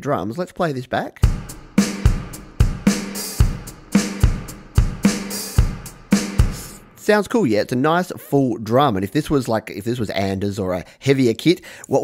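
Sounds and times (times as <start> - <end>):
kick drum beat: 1.2 - 6.9
cymbals: 1.2 - 7.0.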